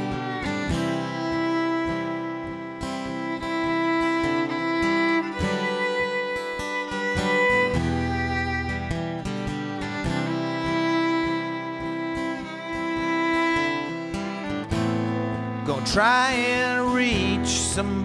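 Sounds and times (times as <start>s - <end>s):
fiddle playing melody: 0.0s - 18.0s
strummed acoustic guitar: 0.0s - 18.0s.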